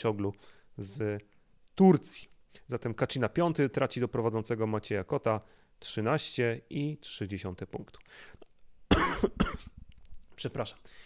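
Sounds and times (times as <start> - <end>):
man coughing: 8.9 - 9.8.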